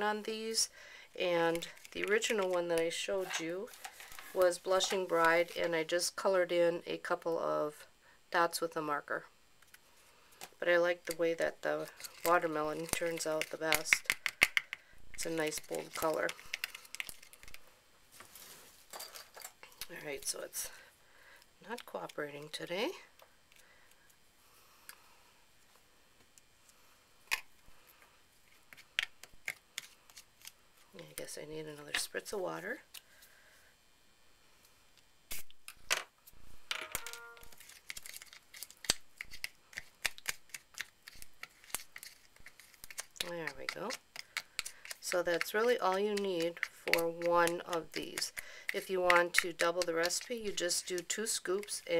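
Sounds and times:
plastic spoon stirring thick paste: 1.3s - 5.9s, 11.0s - 17.6s, 37.4s - 51.9s.

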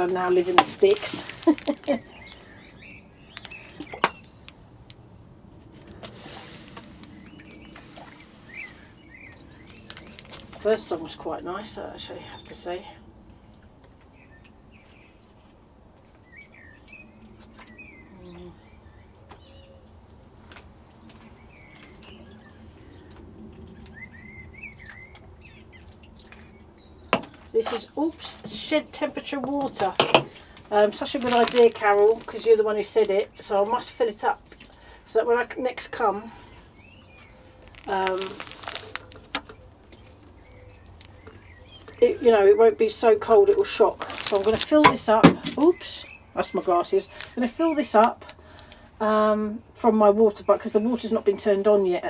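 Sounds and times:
birds singing: 0.0s - 6.1s, 6.8s - 52.0s.

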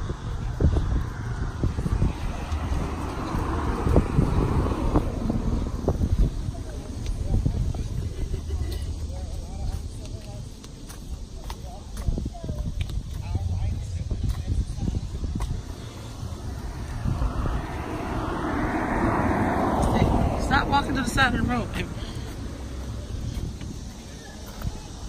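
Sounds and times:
vehicle tyre noise passing: 0.0s - 10.1s, 12.9s - 24.1s
wind rumbling on microphone: 0.0s - 10.6s, 11.2s - 25.0s.

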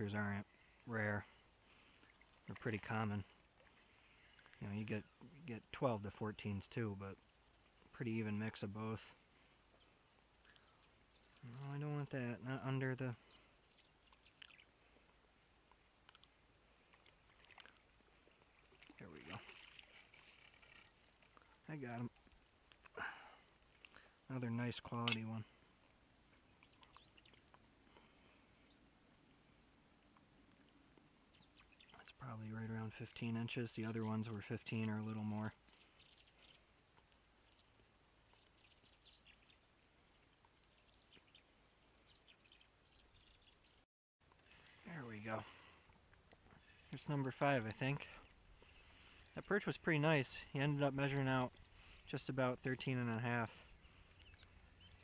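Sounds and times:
faint small ticks: 0.0s - 55.0s
distant bird chirps: 6.4s - 15.6s, 21.6s - 32.2s, 44.4s - 55.0s.

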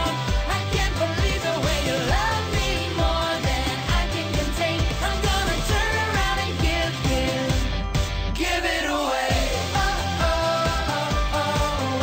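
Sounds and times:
children's pop song: 0.0s - 12.0s.

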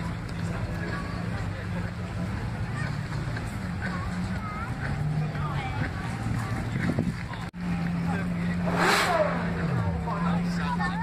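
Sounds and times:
car engine running and revving: 0.0s - 11.0s
crowd chatter: 0.0s - 11.0s.

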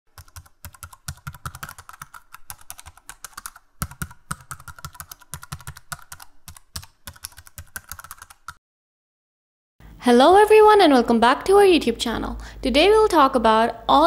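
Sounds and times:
computer keyboard typing: 0.1s - 8.6s.

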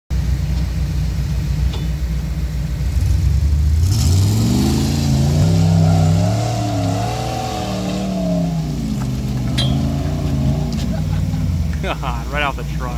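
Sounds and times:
truck engine revving: 0.1s - 12.9s
person laughing: 10.0s - 12.4s.

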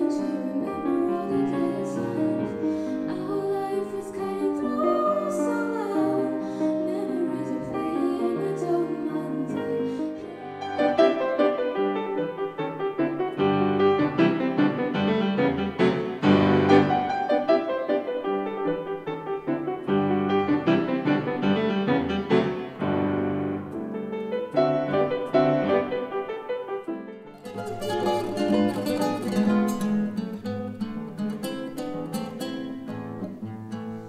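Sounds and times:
solo grand piano: 0.0s - 34.0s.

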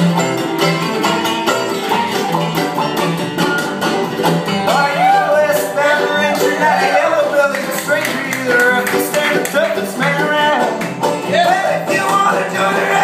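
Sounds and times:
high melody with bending notes: 0.0s - 13.0s
strummed acoustic guitar: 0.0s - 13.0s.

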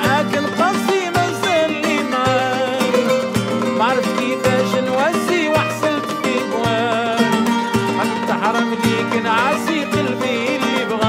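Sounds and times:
bowed violins: 0.0s - 11.0s
deep darbuka strokes: 0.0s - 11.0s
flamenco guitar: 0.0s - 11.0s
kanun: 0.0s - 11.0s
plucked oud: 0.0s - 11.0s.

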